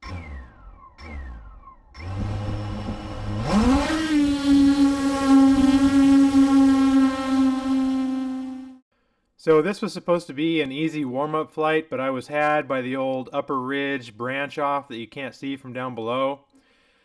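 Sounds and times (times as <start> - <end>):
drone motors humming and whining: 0.0 - 8.8.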